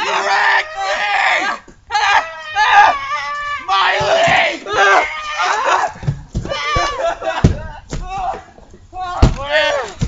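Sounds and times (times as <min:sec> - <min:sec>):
people shouting and screaming: 0:00.0 - 0:10.0
dull knocks: 0:06.0 - 0:08.3, 0:09.2 - 0:10.0.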